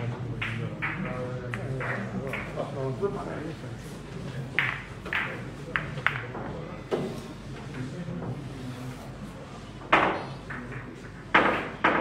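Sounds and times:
murmur of voices: 0:00.0 - 0:11.8
billiard balls clacking: 0:00.4 - 0:02.6.

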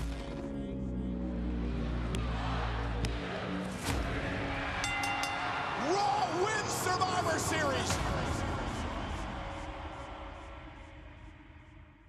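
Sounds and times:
arena crowd noise: 0:01.1 - 0:11.4
ring bell struck: 0:04.8 - 0:05.8.

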